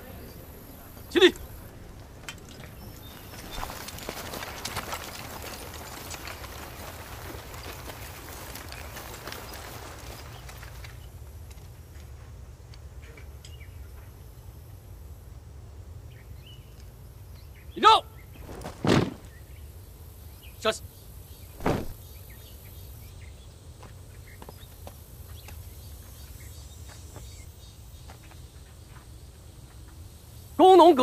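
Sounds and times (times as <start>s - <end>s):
shuffling footsteps: 0.0s - 12.5s, 21.6s - 22.0s.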